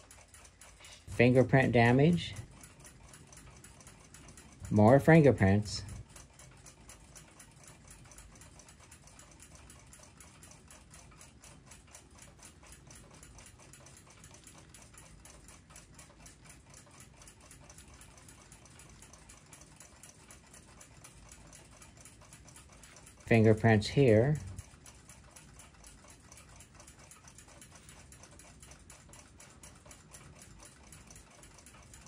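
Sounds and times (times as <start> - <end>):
clock ticking faintly: 0.0 - 32.0.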